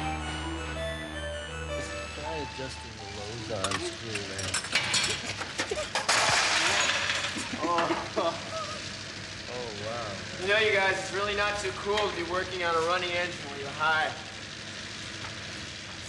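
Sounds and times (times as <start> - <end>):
low voices: 2.2 - 5.4.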